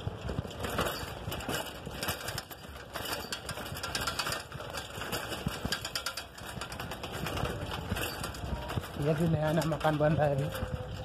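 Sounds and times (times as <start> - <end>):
bicycle rattling over rough road: 0.0 - 11.0.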